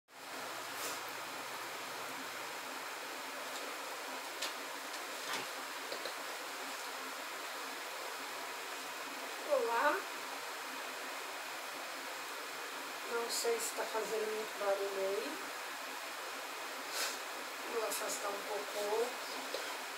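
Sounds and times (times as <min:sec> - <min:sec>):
steady background hiss: 0:00.1 - 0:19.9
faint clicks: 0:05.9 - 0:06.2.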